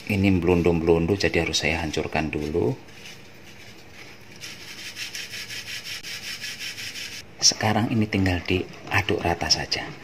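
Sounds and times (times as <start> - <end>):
flour scratching through wire sieve: 0.0 - 7.3.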